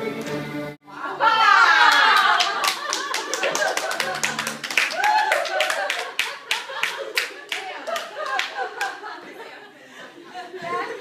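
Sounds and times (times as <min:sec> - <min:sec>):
people laughing: 0:01.0 - 0:11.0
people clapping: 0:01.4 - 0:09.2.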